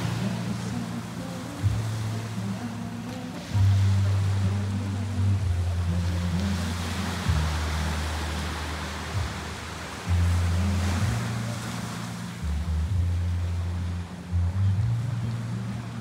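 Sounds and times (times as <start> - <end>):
music with deep bass: 0.0 - 16.0
small waves washing onto beach: 0.0 - 16.0.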